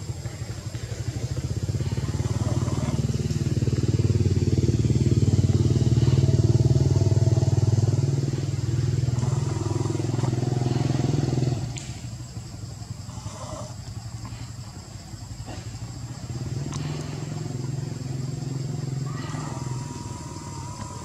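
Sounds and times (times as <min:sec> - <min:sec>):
engine running with low throb: 0:00.0 - 0:21.0.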